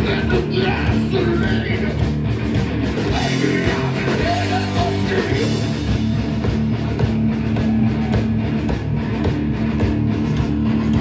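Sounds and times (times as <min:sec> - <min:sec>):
bass guitar: 0:00.0 - 0:11.0
drums: 0:00.0 - 0:11.0
loud electric guitars: 0:00.0 - 0:11.0.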